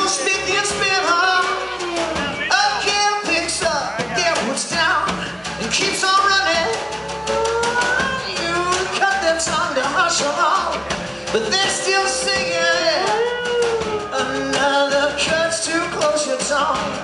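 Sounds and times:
live rock band: 0.0 - 17.0
man singing: 0.0 - 17.0.

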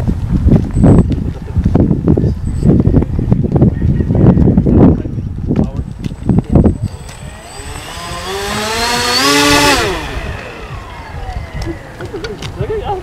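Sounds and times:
electric motors whining: 6.6 - 12.6
propellers spinning down: 6.7 - 12.6.

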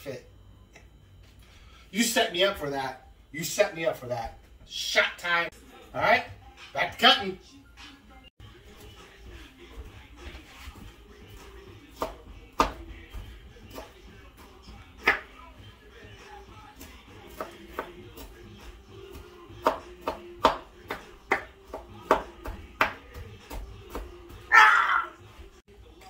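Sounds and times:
knife chopping on wooden board: 12.0 - 12.8, 17.3 - 18.3, 19.1 - 24.4.

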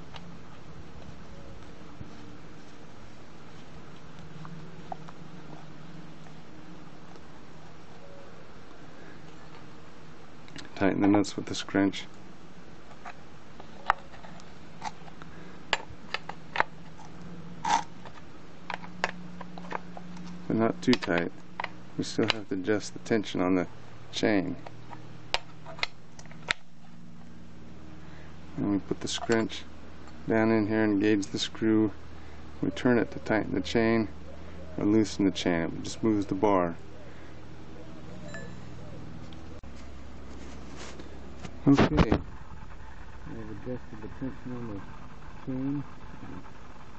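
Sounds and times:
faint steady hum: 0.0 - 46.9.

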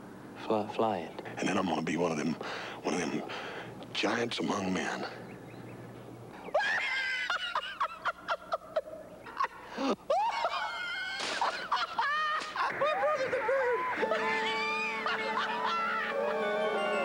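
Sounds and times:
man laughing hard: 6.5 - 17.0.

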